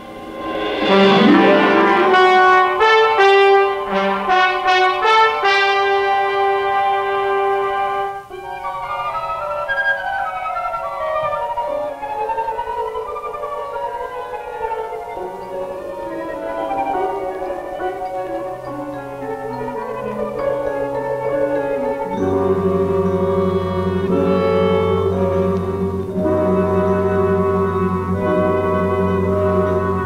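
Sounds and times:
orchestral brass fanfare: 0:00.0 - 0:08.6, 0:15.2 - 0:30.0
soft orchestral passage: 0:00.0 - 0:30.0.

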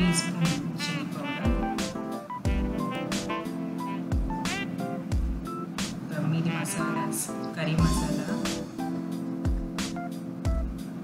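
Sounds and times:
melodic background music: 0:00.0 - 0:11.0
deep bass drum hit: 0:01.5 - 0:03.3, 0:04.1 - 0:05.5, 0:07.8 - 0:08.6.

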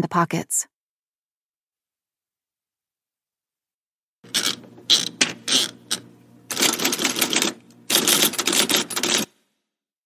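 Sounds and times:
typewriter keys clacking: 0:06.5 - 0:09.3.

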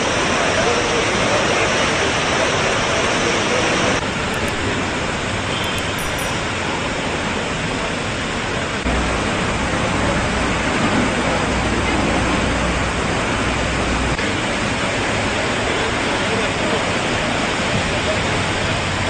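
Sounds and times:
pressurised water jetting: 0:00.0 - 0:19.0.

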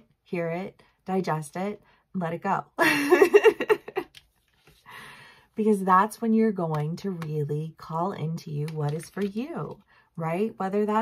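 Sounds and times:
woman giggling: 0:02.8 - 0:04.2.

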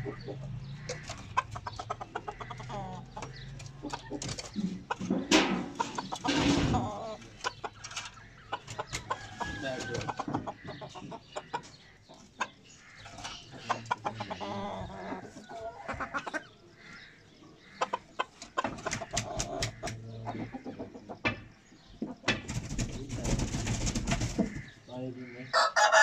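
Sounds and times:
chickens clucking: 0:00.0 - 0:26.0.

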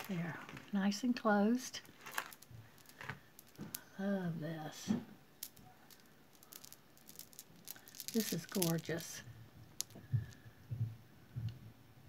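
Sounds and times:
jewelry beads clinking: 0:01.4 - 0:10.4.

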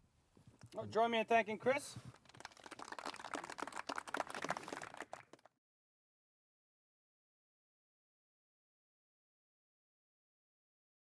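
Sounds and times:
audience applauding: 0:02.1 - 0:05.5.

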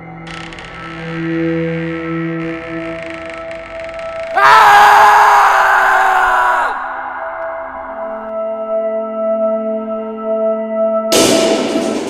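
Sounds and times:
loud shrieking stinger: 0:02.4 - 0:07.0.

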